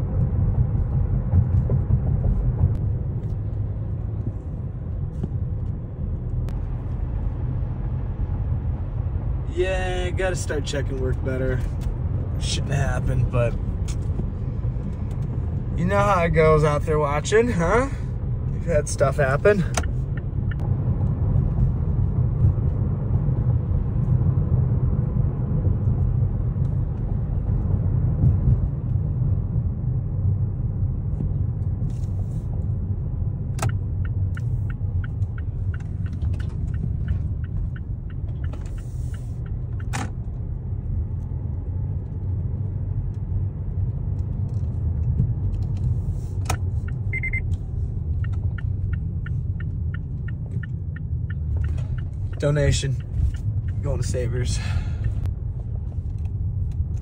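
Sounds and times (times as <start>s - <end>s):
turn signal ticking: 0.0s - 7.6s, 10.1s - 29.3s, 31.2s - 57.0s
car road noise rumble: 0.0s - 57.0s.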